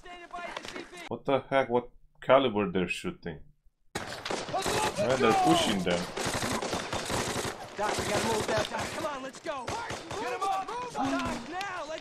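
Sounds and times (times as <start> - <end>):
machine-gun and rifle fire: 4.0 - 11.6
man shouting: 4.6 - 5.8, 9.0 - 12.0.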